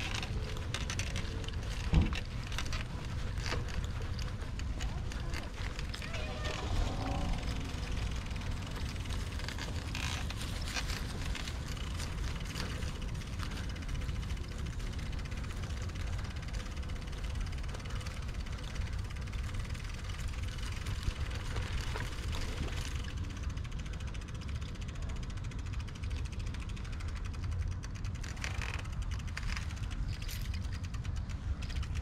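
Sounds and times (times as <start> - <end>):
wind buffeting microphone: 0.0 - 24.2.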